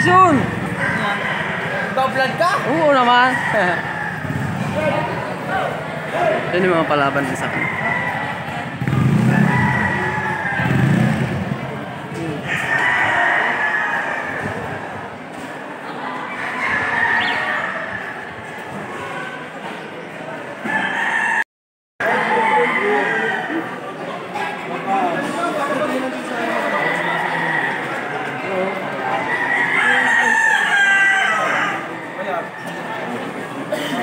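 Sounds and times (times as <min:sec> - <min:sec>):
crowd chatter: 0:00.0 - 0:21.4, 0:22.0 - 0:34.0
roosters crowing: 0:00.0 - 0:34.0.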